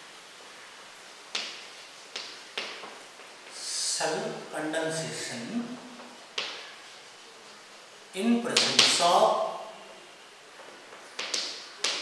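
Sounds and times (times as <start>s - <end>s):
chalk tapping on blackboard: 8.6s - 9.0s, 11.2s - 12.0s.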